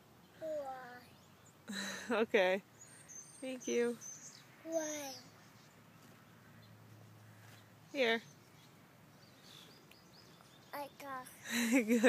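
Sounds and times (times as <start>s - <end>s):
faint bird chirps: 2.8s - 11.4s
woman speaking: 11.6s - 12.0s.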